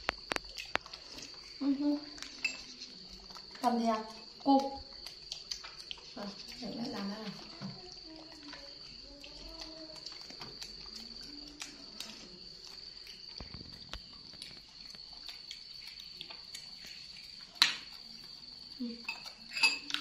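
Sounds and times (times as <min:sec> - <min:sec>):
spoons scraping bowls: 0:02.3 - 0:03.0, 0:19.1 - 0:20.0.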